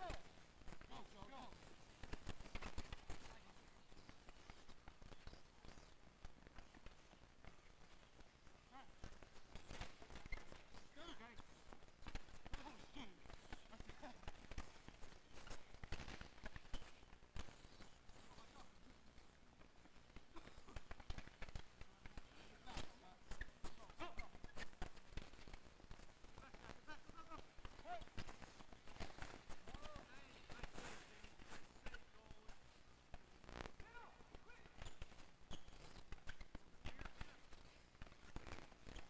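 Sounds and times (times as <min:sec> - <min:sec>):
hockey sticks clacking on ball: 0:00.0 - 0:39.0.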